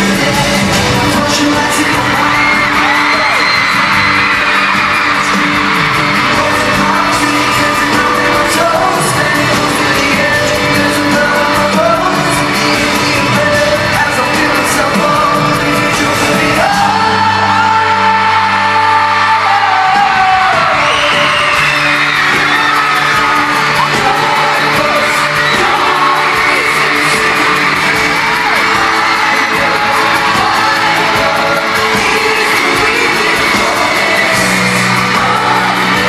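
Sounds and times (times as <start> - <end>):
crowd screaming: 0.0 - 36.0
live pop band with singing: 0.0 - 36.0.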